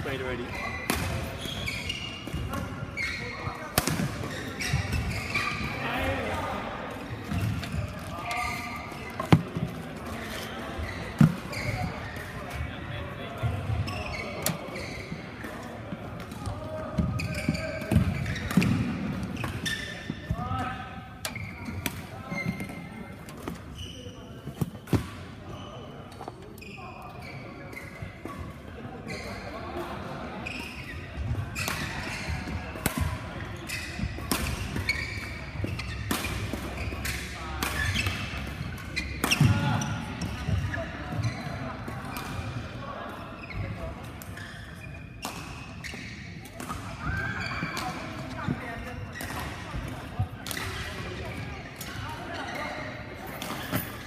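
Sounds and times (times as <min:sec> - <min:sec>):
racket hitting shuttlecock: 0:03.7 - 0:05.1, 0:34.1 - 0:39.6.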